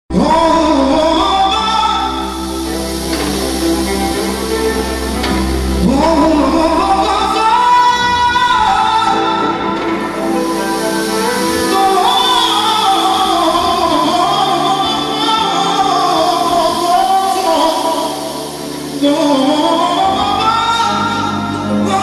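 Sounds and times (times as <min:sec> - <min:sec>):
electronic keyboards playing: 0:00.1 - 0:22.0
person singing ornamented melody: 0:00.1 - 0:22.0.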